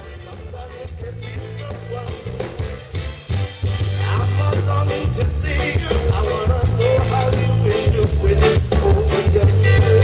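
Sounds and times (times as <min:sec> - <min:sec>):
heavy bass line: 0:00.0 - 0:10.0
reggae band playing: 0:00.0 - 0:10.0.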